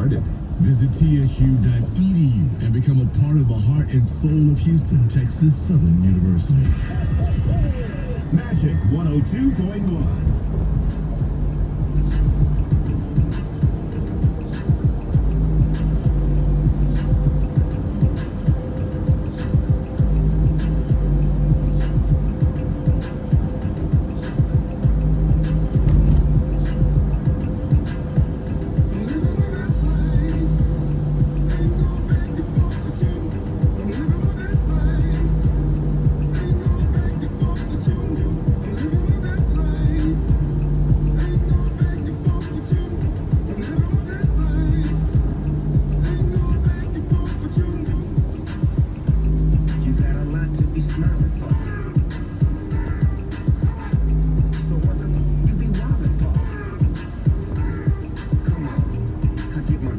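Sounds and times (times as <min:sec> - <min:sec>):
song with deep bass on car radio: 0:00.0 - 0:59.9.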